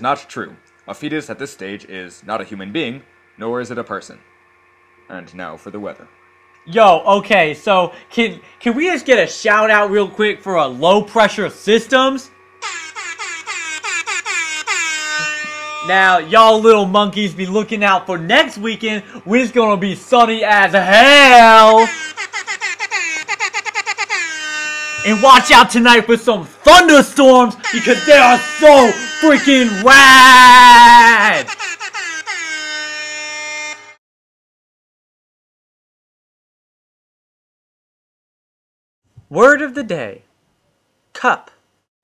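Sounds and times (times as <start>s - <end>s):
person speaking: 6.6s - 12.3s, 15.2s - 22.1s, 25.0s - 31.7s, 39.2s - 40.2s
electronic horn-like chirps and tone: 12.4s - 16.2s, 23.1s - 25.6s, 27.6s - 29.9s, 31.4s - 34.0s
air horn blasts: 27.6s - 29.9s, 32.6s - 34.0s.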